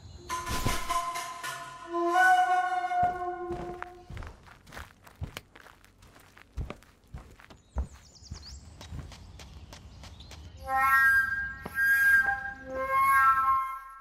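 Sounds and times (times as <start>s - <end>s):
flute melody: 0.8s - 4.1s, 10.6s - 14.0s
footsteps: 2.8s - 10.6s.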